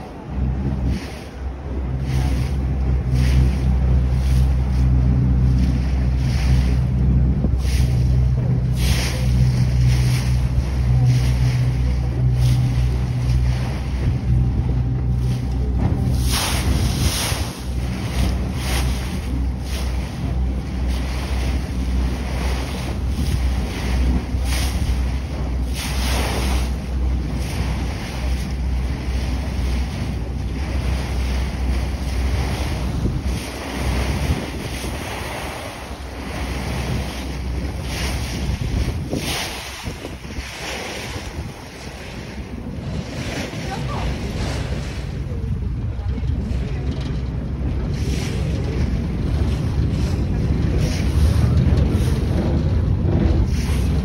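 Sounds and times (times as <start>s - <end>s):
boat engine droning: 0.0s - 54.0s
choppy water washing: 0.0s - 54.0s
wind buffeting microphone: 0.0s - 54.0s.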